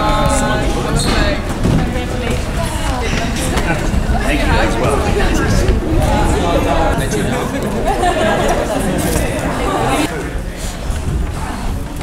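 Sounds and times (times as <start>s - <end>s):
many people talking: 0.0s - 12.0s.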